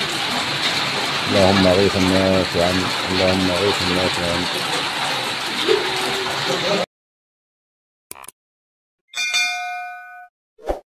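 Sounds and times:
bright bell chime: 9.1 - 10.3.

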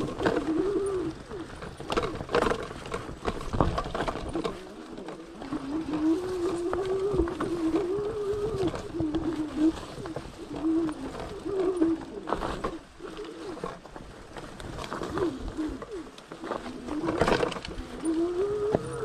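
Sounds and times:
bike knocks and rattles: 0.0 - 12.8, 16.4 - 17.8
low wavering hum: 14.9 - 19.0.

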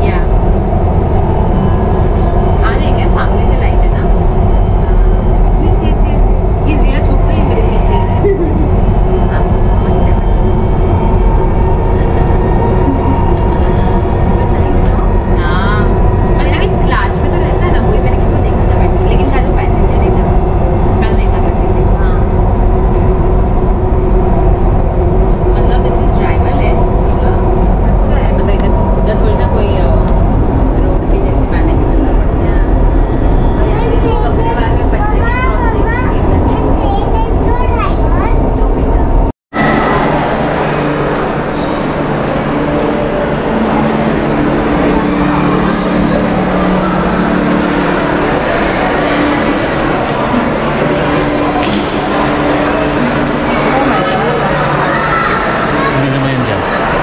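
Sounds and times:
train rumble with whine: 0.0 - 57.0.

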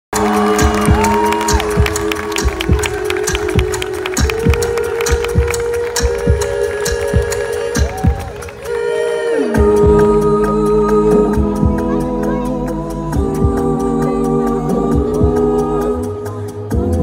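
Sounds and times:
live pop music: 0.1 - 17.0
kick drum beat: 0.2 - 5.5.

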